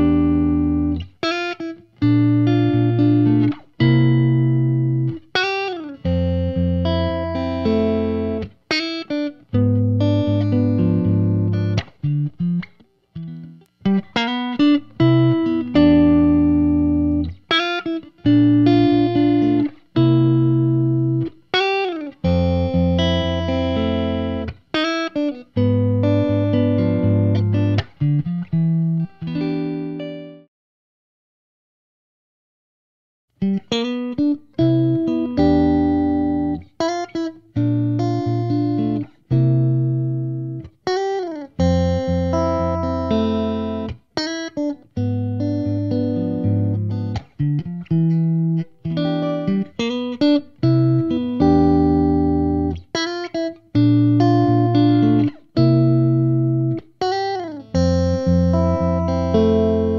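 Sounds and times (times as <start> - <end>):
electric guitar chords and bends: 0.0 - 30.4, 33.4 - 59.9.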